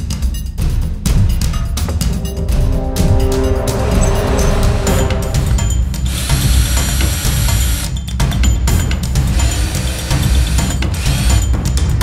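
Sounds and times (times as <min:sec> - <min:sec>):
background music with steady beat: 0:00.0 - 0:12.0
cordless drill drilling metal: 0:09.3 - 0:11.5.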